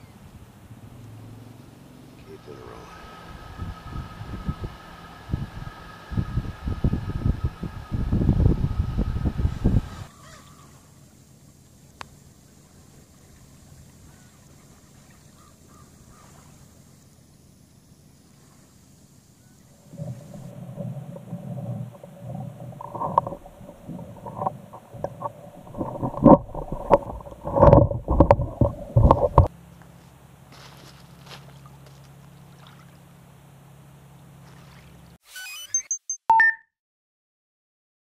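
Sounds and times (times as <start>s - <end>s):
water gurgling underwater: 19.8s - 29.5s.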